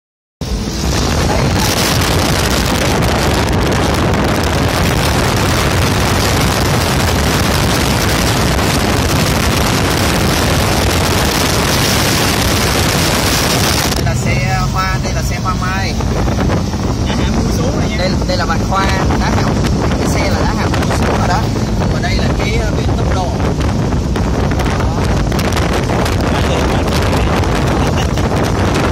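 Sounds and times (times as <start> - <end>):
car road and engine hum: 0.4 - 28.9
wind rushing over microphone: 0.4 - 28.9.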